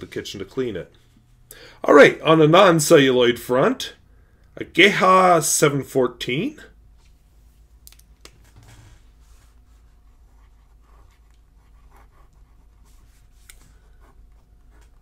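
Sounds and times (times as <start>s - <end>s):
pen nib scratching paper: 9.5s - 15.0s.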